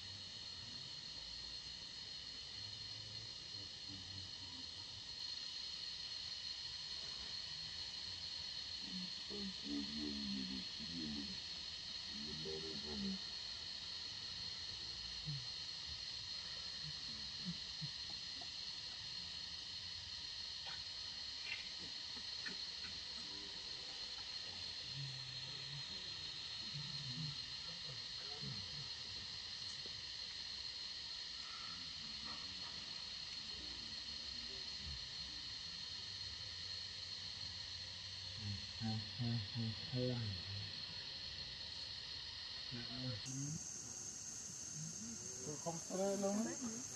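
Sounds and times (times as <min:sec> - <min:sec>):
high hiss of outdoor noise: 0:00.0 - 0:46.9
distant voices murmuring: 0:08.9 - 0:13.3, 0:38.4 - 0:41.1.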